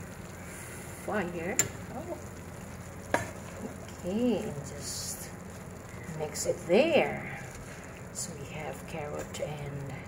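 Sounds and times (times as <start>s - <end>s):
food sizzling in a frying pan: 0.0s - 10.0s
wooden spatula stirring: 5.4s - 9.4s.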